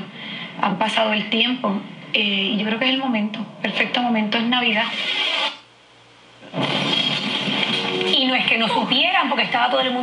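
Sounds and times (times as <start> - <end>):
voice on television: 0.0 - 5.1, 6.4 - 10.0
music and sound effects: 6.6 - 8.3.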